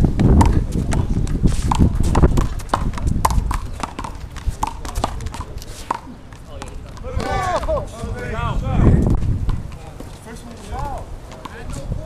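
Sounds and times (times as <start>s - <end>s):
sneaker footsteps on concrete: 0.0s - 12.0s.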